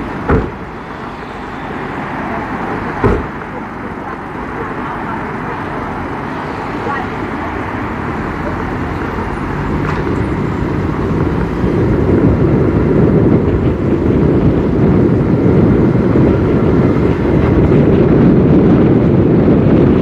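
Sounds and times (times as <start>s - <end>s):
car road and engine noise: 0.0s - 20.0s
sharp knock: 0.3s - 0.6s, 3.0s - 3.4s.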